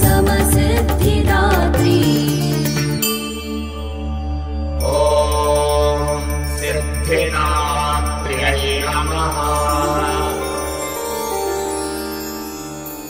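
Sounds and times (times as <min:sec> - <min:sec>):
woman singing devotional song: 0:00.0 - 0:03.2
small bells tinkling: 0:04.8 - 0:13.0.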